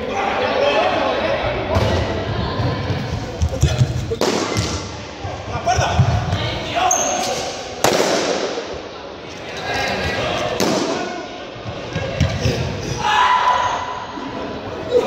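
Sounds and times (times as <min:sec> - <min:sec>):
people's voices and shouts: 0:00.0 - 0:15.0
balloons bursting: 0:07.8 - 0:08.6.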